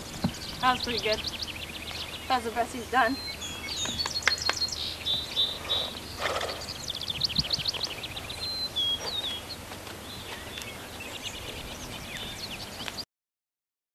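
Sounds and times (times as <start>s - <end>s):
birds singing with trills: 0.0s - 13.0s.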